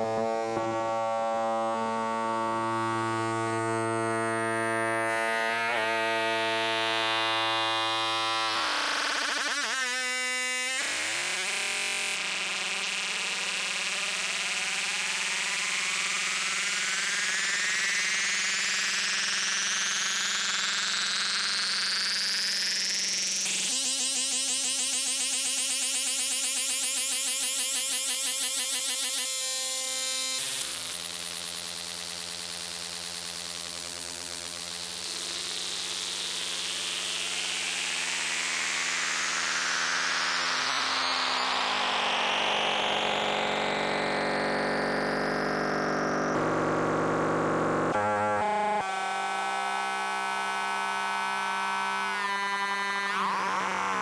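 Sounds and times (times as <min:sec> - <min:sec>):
synthesizer droning tone: 0:00.0 - 0:12.2, 0:37.2 - 0:54.0.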